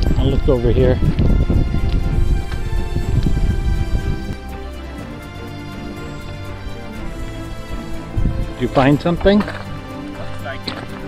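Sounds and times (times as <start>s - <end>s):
background music: 0.0s - 11.0s
footsteps on wooden planks: 9.2s - 9.8s.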